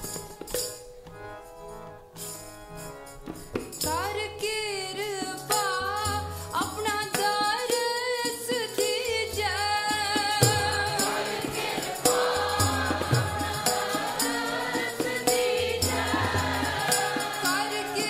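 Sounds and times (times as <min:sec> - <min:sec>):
harmonium: 0:00.0 - 0:18.0
tabla drumming: 0:03.2 - 0:18.0
women singing a hymn: 0:09.0 - 0:18.0.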